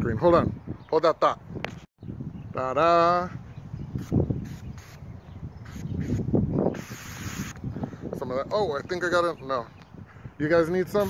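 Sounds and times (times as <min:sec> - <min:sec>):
aerosol spray can hissing: 0:04.0 - 0:05.0, 0:05.7 - 0:07.6.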